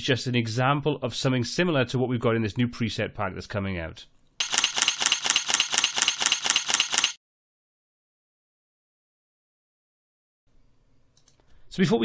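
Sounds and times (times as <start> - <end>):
camera shutter clicking rapidly: 4.4 - 7.2.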